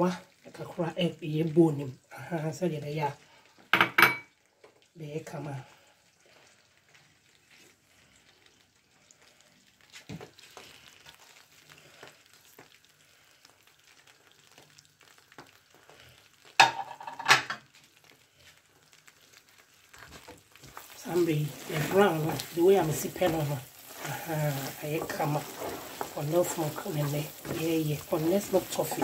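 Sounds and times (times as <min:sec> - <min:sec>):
toffee sizzling in a pan: 0:00.0 - 0:29.0.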